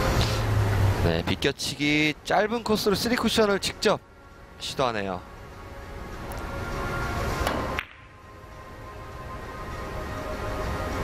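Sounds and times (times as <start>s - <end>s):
rushing background noise: 0.0s - 11.0s
billiard balls clicking: 7.4s - 8.1s
cue striking ball: 7.4s - 8.2s.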